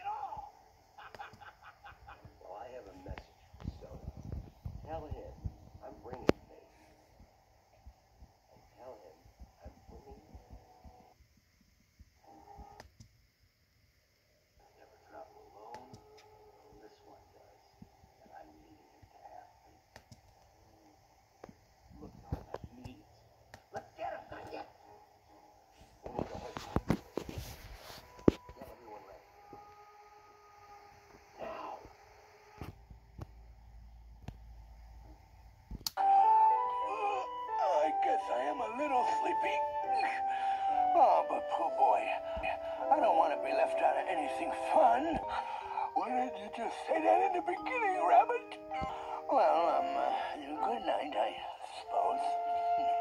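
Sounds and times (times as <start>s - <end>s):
music with melody and chords: 36.0s - 46.5s.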